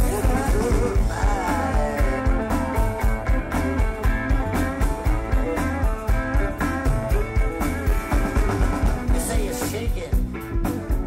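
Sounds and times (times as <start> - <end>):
drum kit steady beat: 0.0 - 11.0
guitars: 0.0 - 11.0
rock band playing live: 0.0 - 11.0.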